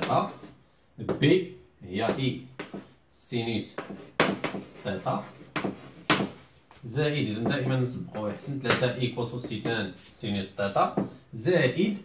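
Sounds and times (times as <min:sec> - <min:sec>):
chalk tapping on board: 0:02.1 - 0:03.0, 0:03.6 - 0:06.6
chalk scraping on blackboard: 0:02.6 - 0:08.8, 0:09.4 - 0:10.4.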